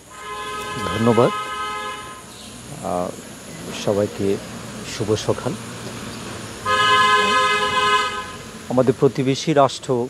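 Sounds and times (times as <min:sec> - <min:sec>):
vehicle horn held blast: 0:00.1 - 0:02.3, 0:06.6 - 0:08.4.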